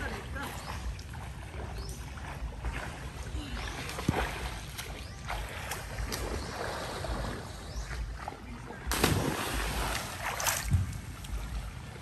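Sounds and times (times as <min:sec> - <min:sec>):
water lapping around boat: 0:00.0 - 0:12.0.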